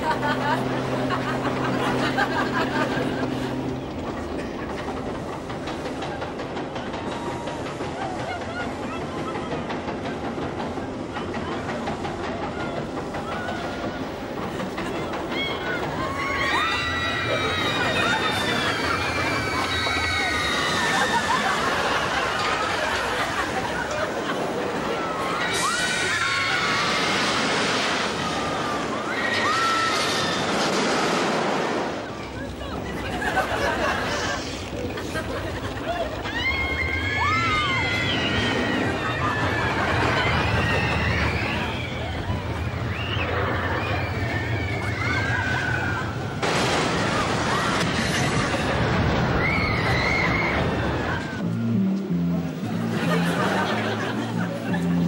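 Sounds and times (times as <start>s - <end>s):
steady low hum: 0.0s - 7.0s
roller coaster rattling on track: 0.0s - 55.0s
riders screaming: 14.8s - 31.2s, 35.6s - 51.5s.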